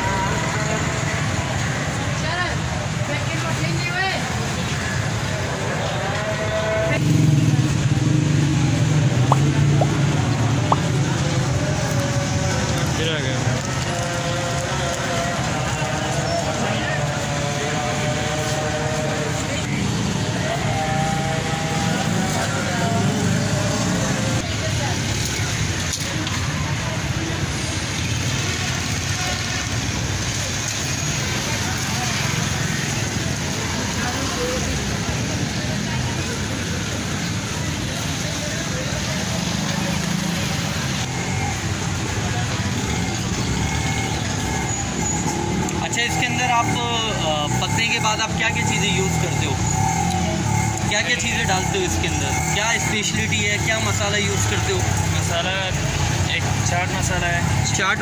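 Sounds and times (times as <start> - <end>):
people talking: 0.0 - 58.0
street traffic: 0.0 - 58.0.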